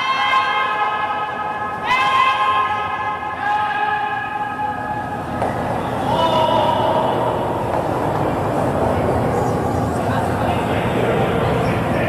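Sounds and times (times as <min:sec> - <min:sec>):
people shouting long calls: 0:00.0 - 0:05.3, 0:06.0 - 0:07.6.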